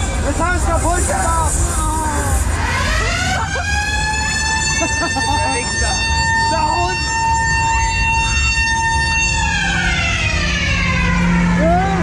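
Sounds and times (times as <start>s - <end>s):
siren rising to high tone: 2.4s - 12.0s.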